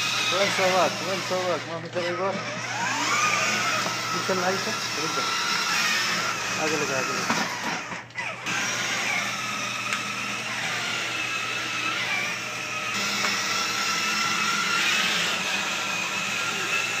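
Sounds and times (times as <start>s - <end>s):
electric toy car motors whirring: 0.0s - 17.0s.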